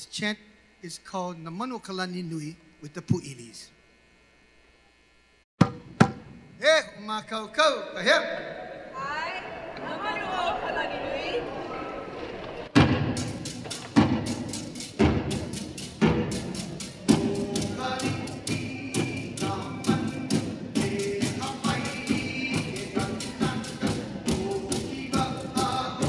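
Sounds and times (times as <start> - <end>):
deep drum beats: 12.7 - 26.0
person chanting: 17.1 - 26.0.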